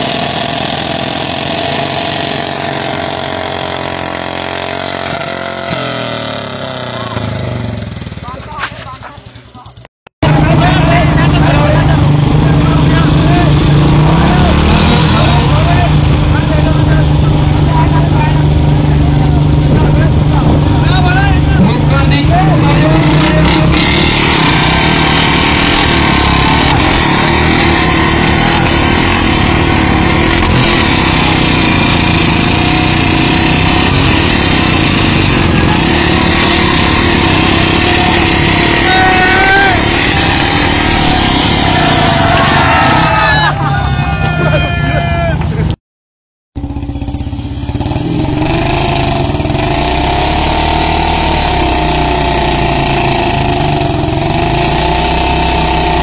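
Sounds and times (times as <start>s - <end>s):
motorcycle engines running: 0.0s - 45.8s, 46.6s - 56.0s
crowd shouting and chatter: 8.2s - 45.8s.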